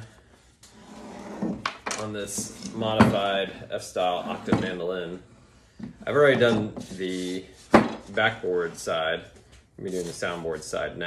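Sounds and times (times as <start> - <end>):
wood knocking and scraping on wood: 0.6 - 3.4, 4.2 - 8.4.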